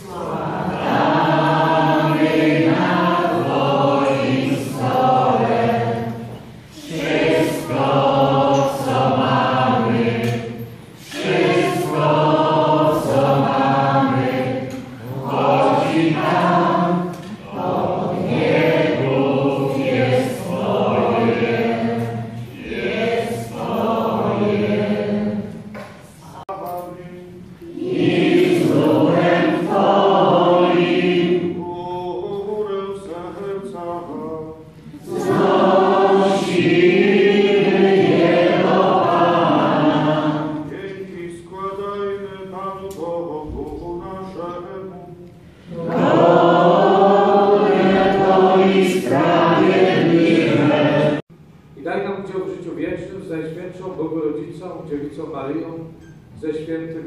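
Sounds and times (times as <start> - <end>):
group singing a hymn: 0.0 - 51.3.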